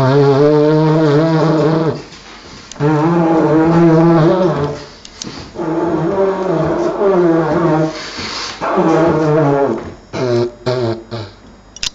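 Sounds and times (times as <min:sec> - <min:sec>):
didgeridoo drone: 0:00.0 - 0:02.2, 0:02.8 - 0:11.4.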